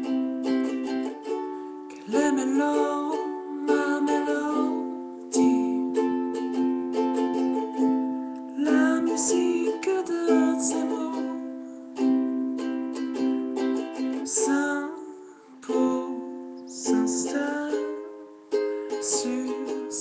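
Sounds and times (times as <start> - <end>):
ukulele strummed in steady rhythm: 0.0 - 20.0.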